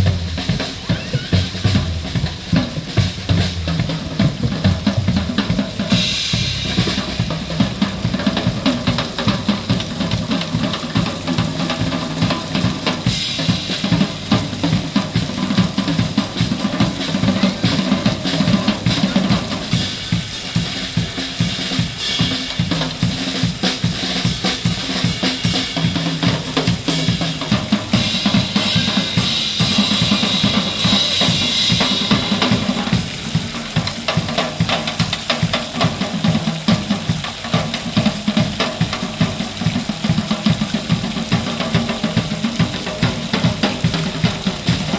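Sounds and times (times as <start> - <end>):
drum kit groove: 0.0 - 44.9.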